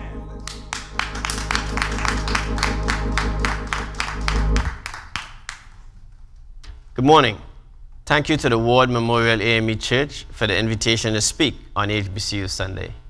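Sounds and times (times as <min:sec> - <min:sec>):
organ chords: 0:00.0 - 0:05.2
congregation clapping: 0:00.0 - 0:05.9.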